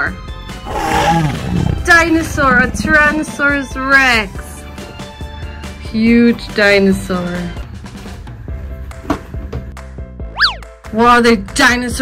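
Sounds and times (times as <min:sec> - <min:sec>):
background music: 0:00.0 - 0:12.0
cartoon boing sound effect: 0:10.3 - 0:10.6.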